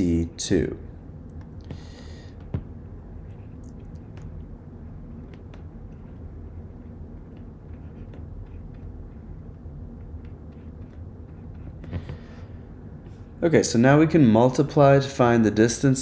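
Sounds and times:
low background rumble: 0.0s - 16.0s
stylus tapping on drawing tablet: 1.3s - 4.5s, 5.1s - 12.4s.

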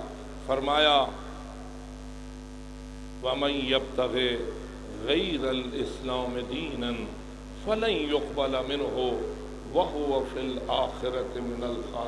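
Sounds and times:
electrical mains hum: 0.0s - 12.0s
faint microphone hiss: 0.0s - 12.0s.

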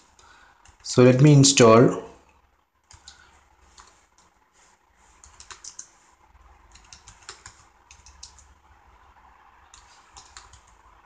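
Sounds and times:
typing on computer keyboard: 2.8s - 4.3s, 5.2s - 6.0s, 6.7s - 8.6s, 9.7s - 10.8s.

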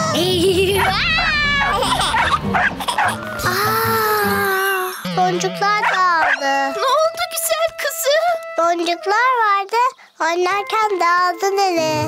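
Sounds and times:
cartoon puppy whining: 0.6s - 5.0s
cartoon puppy yipping: 0.7s - 3.2s, 5.8s - 6.5s.

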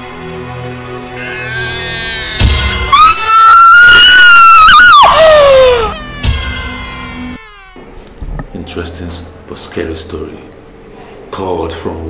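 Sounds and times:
woman screaming: 1.3s - 7.9s.

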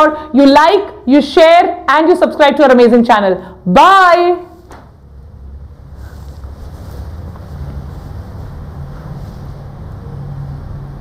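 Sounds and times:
low room background rumble: 0.0s - 11.0s.

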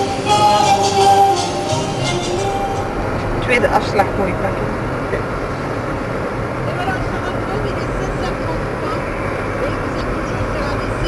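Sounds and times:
car cabin road and engine noise: 0.0s - 11.0s.

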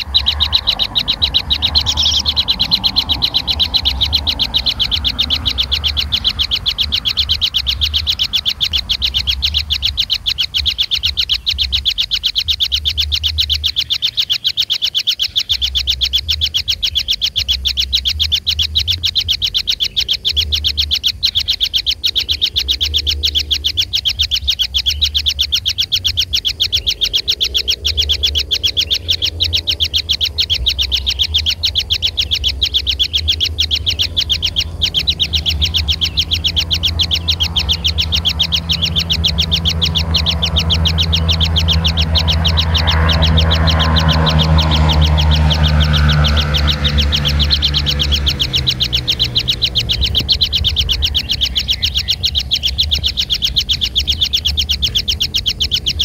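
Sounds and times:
nestlings chirping trill: 0.0s - 56.0s.

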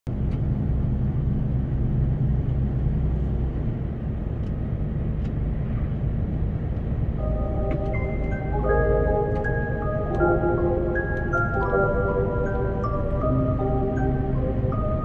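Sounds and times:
vehicle engine and road rumble: 0.0s - 15.0s
music with held notes: 7.2s - 15.0s.

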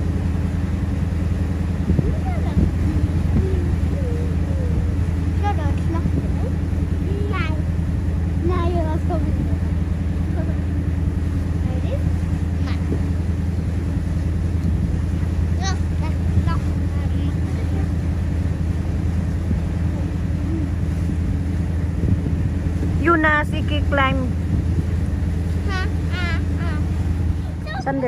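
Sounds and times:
boat engine droning: 0.0s - 28.0s.

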